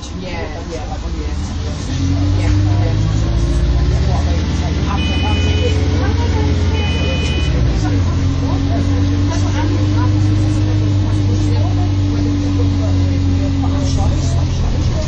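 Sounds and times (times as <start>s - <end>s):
bus engine hum and whine: 0.0s - 15.0s
two-tone electronic beeps: 5.0s - 6.0s, 6.7s - 7.7s.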